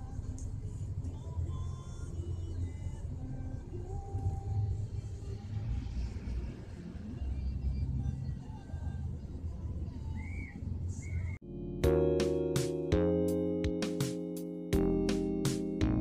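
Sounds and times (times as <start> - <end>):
background music: 11.4 - 16.0.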